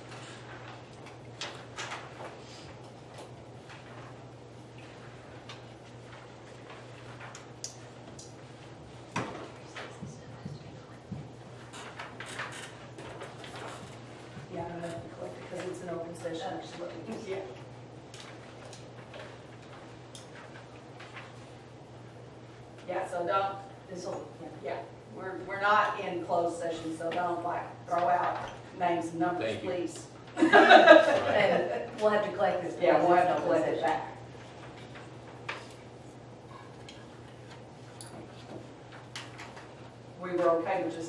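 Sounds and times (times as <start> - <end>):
low room hum: 0.0 - 41.0.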